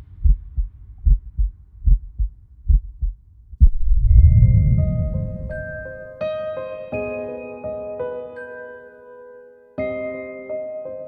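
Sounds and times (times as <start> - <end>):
heartbeat thumps: 0.1 - 6.0.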